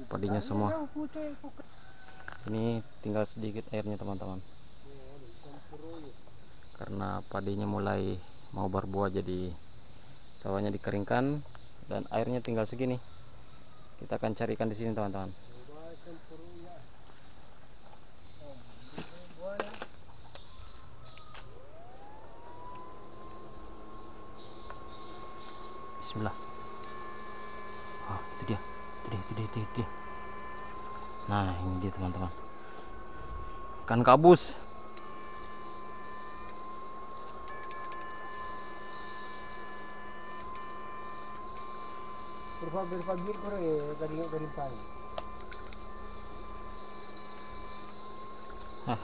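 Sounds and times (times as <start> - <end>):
electric whine rising in pitch: 17.8 - 49.0
low hum: 20.5 - 49.0
light clicks: 42.9 - 43.6.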